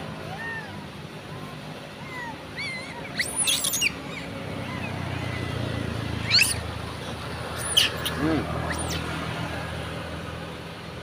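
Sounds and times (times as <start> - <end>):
monkeys squealing: 2.0 - 9.3.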